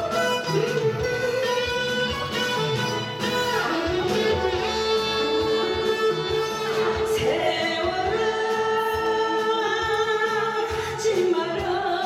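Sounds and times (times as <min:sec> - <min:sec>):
instrumental backing track: 0:00.0 - 0:12.0
woman singing into a microphone: 0:03.3 - 0:12.0.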